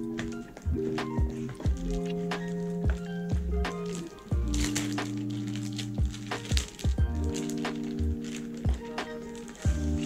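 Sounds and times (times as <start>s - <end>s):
background music with kick drum: 0.0s - 10.0s
plastic sleeve crackling: 0.0s - 10.0s.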